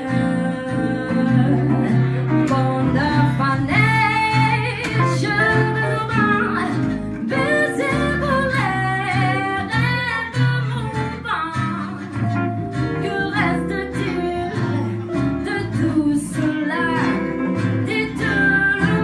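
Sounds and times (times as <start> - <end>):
guitars playing: 0.0 - 19.0
woman singing jazz: 0.0 - 19.0.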